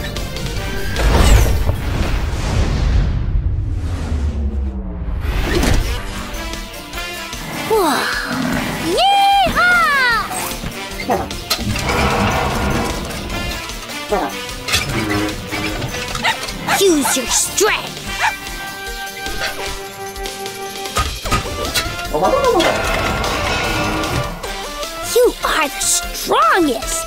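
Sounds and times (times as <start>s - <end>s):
cartoon background music: 5.4s - 27.0s.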